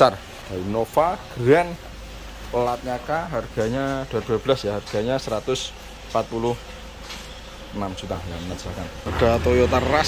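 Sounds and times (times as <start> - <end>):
man speaking: 0.0 - 1.9, 2.5 - 6.7, 7.7 - 10.0.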